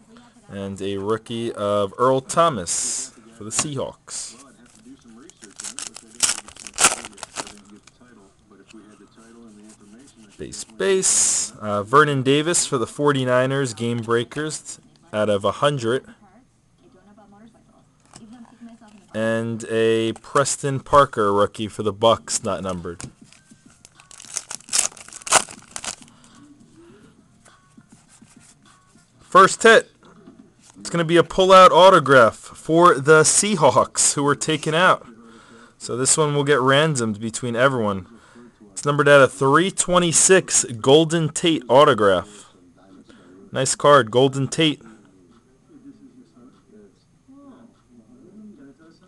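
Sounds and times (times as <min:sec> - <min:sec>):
cards rustling: 0:03.5 - 0:08.0, 0:08.6 - 0:11.1, 0:18.0 - 0:26.4
foil wrapper tearing and crinkling: 0:04.7 - 0:07.9, 0:23.8 - 0:26.2.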